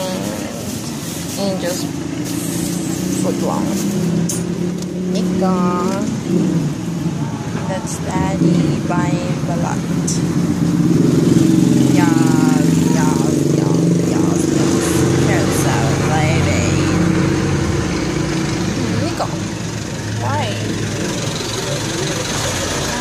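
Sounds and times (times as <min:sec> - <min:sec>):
vehicle engine idling: 0:00.0 - 0:23.0
scattered voices: 0:11.6 - 0:17.3, 0:18.1 - 0:23.0.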